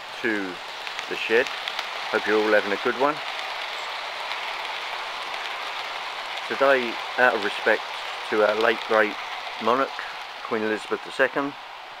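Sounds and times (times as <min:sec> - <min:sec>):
model train coaches rolling: 0:00.0 - 0:12.0.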